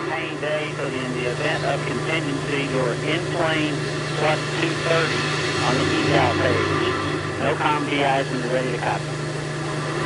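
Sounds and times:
indistinct voices: 0.0 - 9.2
steady low hum: 0.0 - 10.0.

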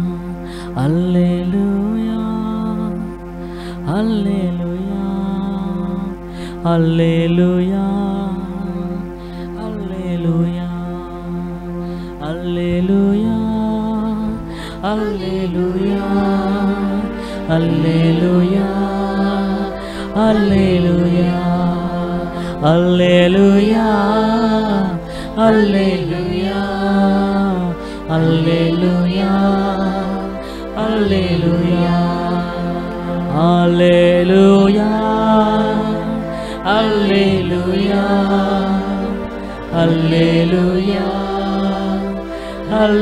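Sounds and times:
electronic keyboard chords: 0.0 - 43.0
man singing long notes: 0.0 - 43.0.

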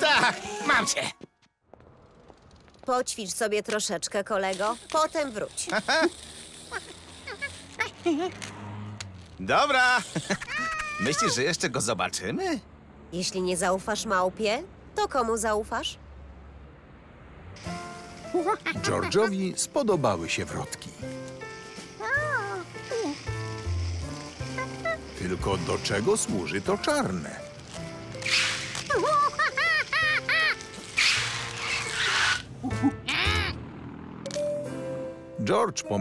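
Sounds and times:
squeaky cartoon monkey sounds: 9.9 - 11.5, 24.5 - 25.2, 28.3 - 33.6
cartoon monkey voice: 10.2 - 11.4, 32.1 - 33.6
light background music: 17.6 - 33.6, 34.2 - 36.0.

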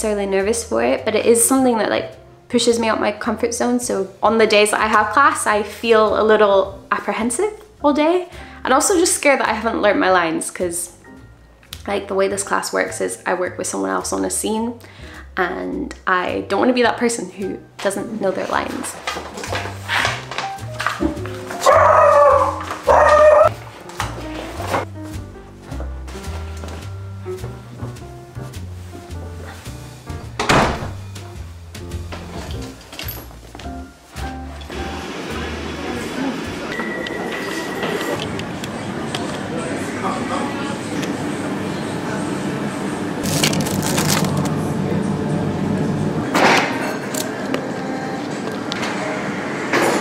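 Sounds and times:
background music: 0.0 - 50.0
pet calling loudly: 21.6 - 23.5
chiller cabinets humming: 38.0 - 49.8
packaging crinkling: 43.2 - 44.6.

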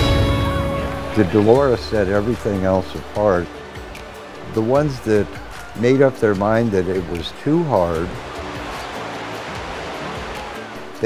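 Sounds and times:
soft background music: 0.0 - 11.0
whitewater rushing: 0.0 - 11.0.

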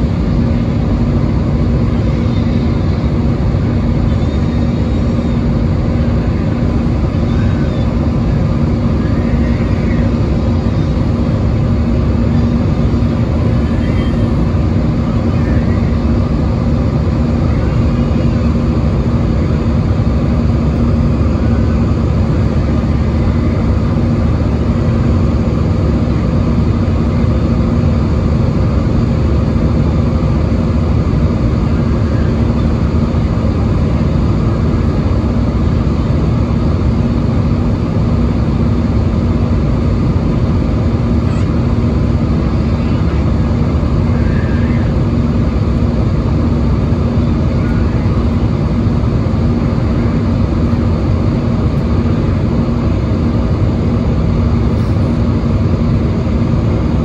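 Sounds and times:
jet engine drone: 0.0 - 57.0
steady low hum: 0.0 - 57.0.

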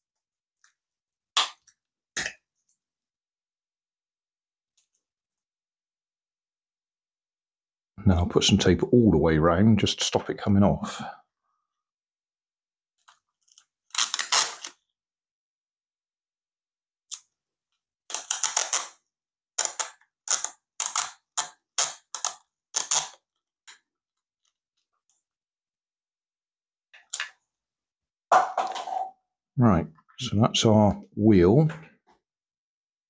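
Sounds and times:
sticky tape pulled off roll: 13.6 - 14.8, 18.1 - 19.0, 19.6 - 23.2.

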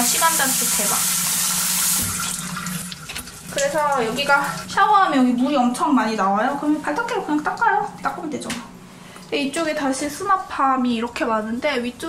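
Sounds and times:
shower head spraying water: 0.0 - 4.5.

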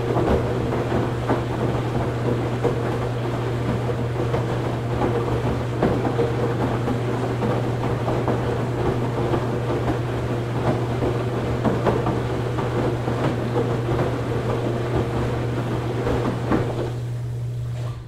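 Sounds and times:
washing machine motor hum: 0.0 - 18.0.

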